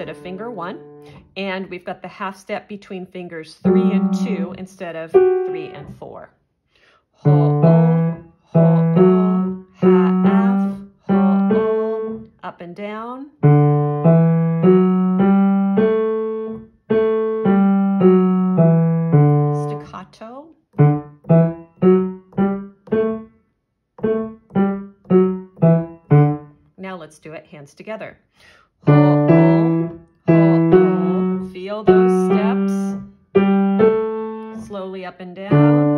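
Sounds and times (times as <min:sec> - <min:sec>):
piano notes: 0:00.0 - 0:01.2, 0:03.6 - 0:06.1, 0:07.2 - 0:12.3, 0:13.4 - 0:20.0, 0:20.8 - 0:23.4, 0:24.0 - 0:26.6, 0:28.9 - 0:34.9, 0:35.5 - 0:35.9.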